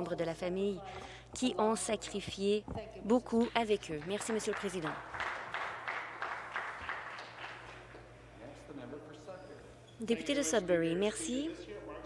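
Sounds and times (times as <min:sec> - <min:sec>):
people clapping: 0:03.4 - 0:08.2.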